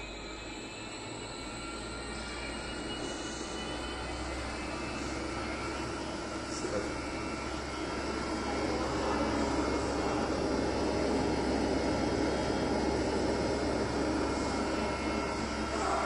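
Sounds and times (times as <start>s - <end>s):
centrifuge whirring hum: 0.0s - 16.0s.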